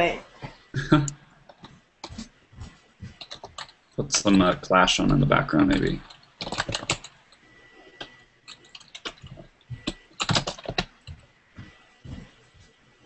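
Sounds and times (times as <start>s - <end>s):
typing on computer keyboard: 3.2s - 3.8s, 5.6s - 7.2s, 8.0s - 11.2s.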